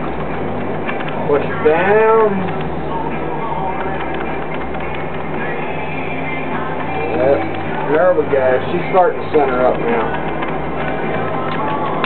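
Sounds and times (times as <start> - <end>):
potter's wheel humming: 0.0 - 12.0.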